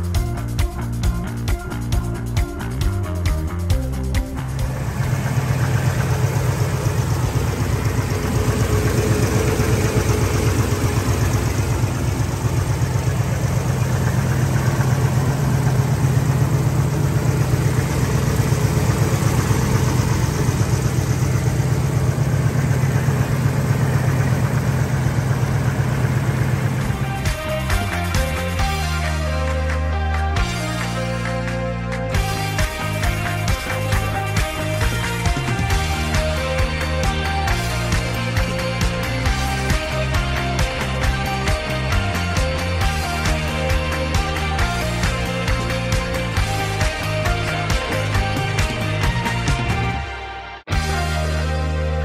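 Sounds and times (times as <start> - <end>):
car engine idling: 0.0 - 52.0.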